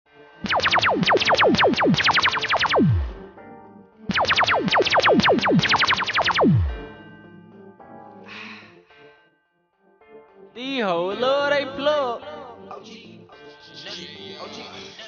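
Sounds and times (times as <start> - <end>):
falling synthesizer zaps: 0.4 - 3.3, 4.1 - 6.9.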